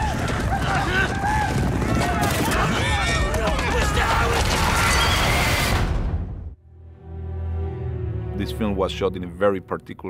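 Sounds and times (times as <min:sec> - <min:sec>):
horses galloping: 0:00.0 - 0:04.8.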